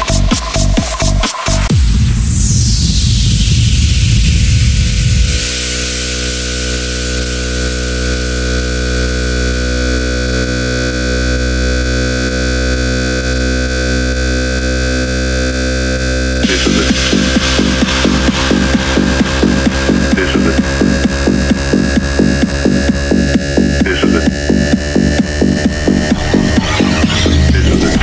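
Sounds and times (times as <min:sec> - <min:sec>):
rumbling low noise: 0:01.6 - 0:28.0
white-noise sweep: 0:01.7 - 0:09.5, 0:16.2 - 0:28.0
synthesizer drone chord: 0:01.7 - 0:28.0.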